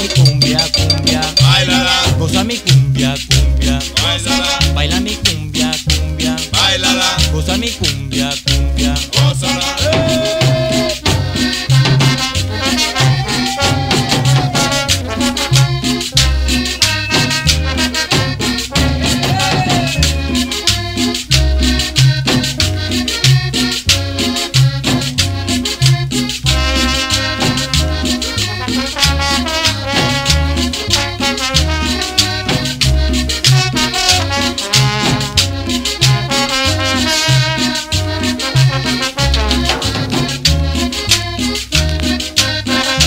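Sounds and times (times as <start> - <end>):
instrumental cumbia music: 0.0 - 43.0.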